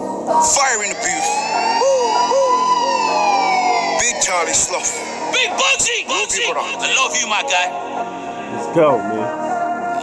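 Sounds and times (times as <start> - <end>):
music: 0.0 - 10.0
long wailing siren tone: 0.4 - 8.0
short swooping siren tones: 1.0 - 6.1.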